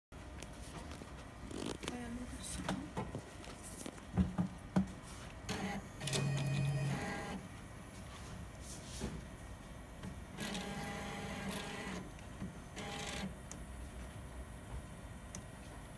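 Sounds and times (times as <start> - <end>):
printer motor humming: 5.4 - 7.7, 9.9 - 14.3.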